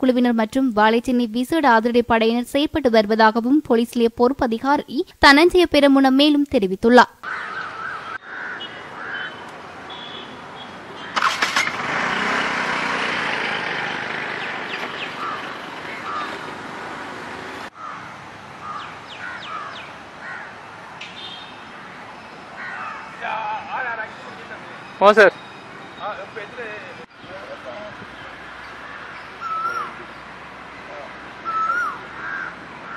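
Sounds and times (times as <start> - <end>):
birds chirping: 7.2 - 11.5, 12.1 - 32.9
passing vehicle noise: 7.5 - 32.9.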